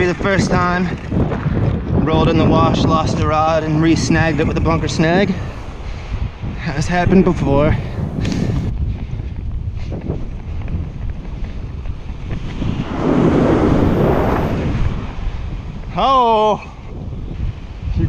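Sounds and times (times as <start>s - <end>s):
wind buffeting microphone: 0.0s - 18.0s
ocean surf rushing: 12.3s - 15.6s.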